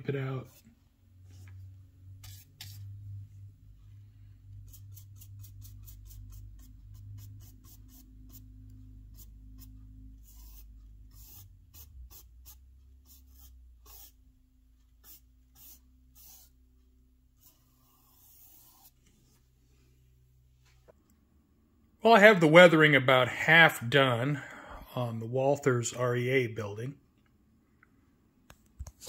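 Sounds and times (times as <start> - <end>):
paintbrush strokes on plastic: 0.0 - 3.2, 4.6 - 14.2, 14.8 - 19.6.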